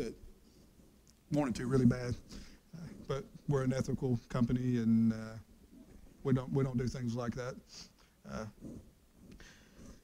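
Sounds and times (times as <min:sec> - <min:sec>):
breath drawn in: 0:07.7 - 0:10.0.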